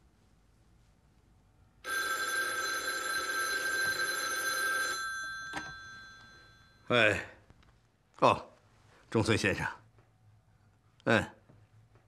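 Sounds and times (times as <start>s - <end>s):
telephone bell ringing: 1.8s - 6.9s.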